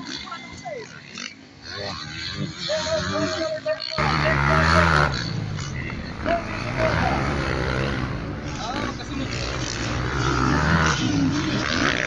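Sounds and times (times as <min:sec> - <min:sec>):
motorbike engines revving: 0:00.0 - 0:12.0
people's voices: 0:00.0 - 0:12.0.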